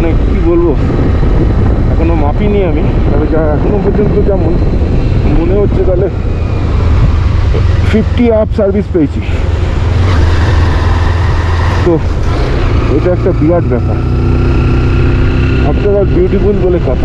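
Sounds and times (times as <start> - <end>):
faint engine whine: 0.0 - 17.0
motorcycle running: 0.0 - 17.0
wind rumble on microphone: 0.0 - 17.0.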